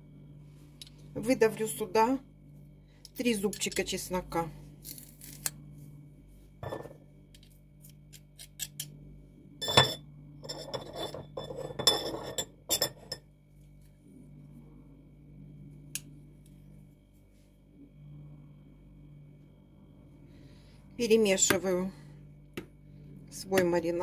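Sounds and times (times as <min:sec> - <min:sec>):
utensils clinking on ceramic: 0:09.6 - 0:13.3.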